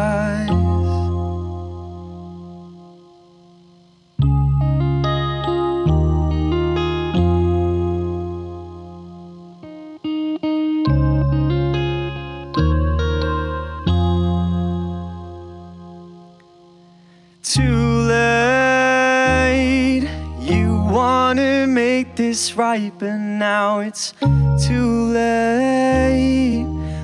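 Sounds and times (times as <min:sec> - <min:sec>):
electric guitar and keyboard chord: 0:00.0 - 0:27.0.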